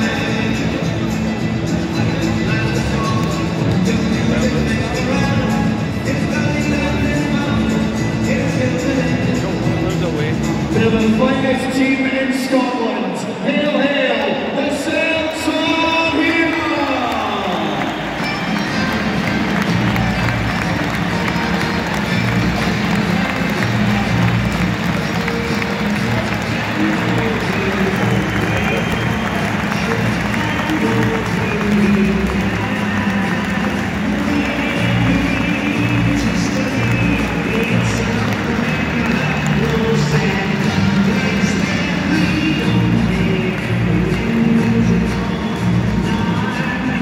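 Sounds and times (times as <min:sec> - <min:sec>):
music over stadium loudspeakers: 0:00.0 - 0:47.0
crowd cheering and applauding: 0:14.9 - 0:47.0.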